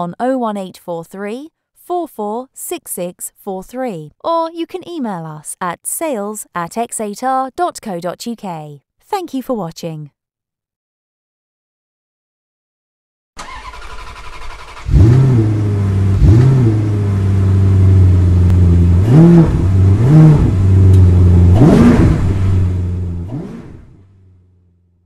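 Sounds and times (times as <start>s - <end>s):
car engine starting and revving: 13.4s - 24.8s.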